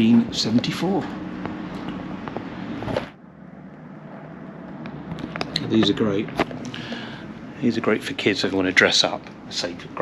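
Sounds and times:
low hum: 0.0 - 10.0
road traffic rushing: 0.0 - 10.0.

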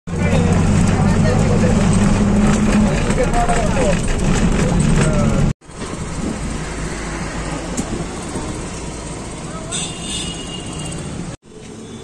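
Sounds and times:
bus engine and road drone: 0.1 - 9.8.

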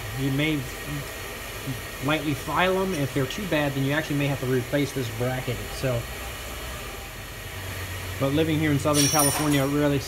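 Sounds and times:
workshop hum and hiss: 0.0 - 10.0.

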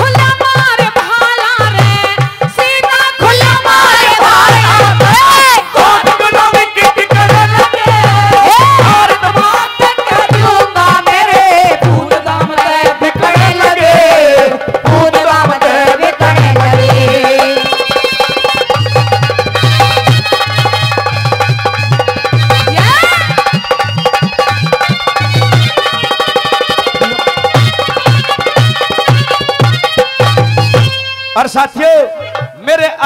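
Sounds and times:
live musical accompaniment: 0.0 - 33.0
drum strokes: 1.8 - 31.1
held melody notes: 18.5 - 31.4
pulsing low drum beat: 18.9 - 30.9
voices crying out together: 26.7 - 27.6.

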